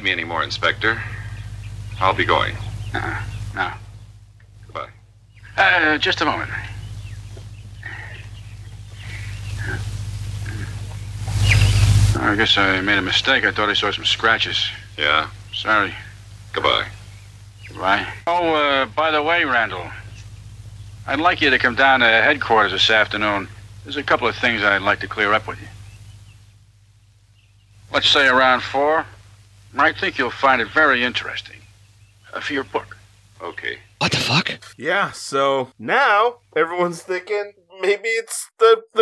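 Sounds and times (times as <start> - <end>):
man speaking: 0.0 - 1.3, 2.0 - 2.6, 4.7 - 6.8, 12.2 - 17.0, 17.7 - 20.1, 21.1 - 25.7, 27.9 - 29.2, 29.8 - 31.6, 32.3 - 39.0
low swell with hiss: 0.0 - 34.0
faint movement sounds: 0.0 - 37.4
low electrical hum: 0.0 - 38.2.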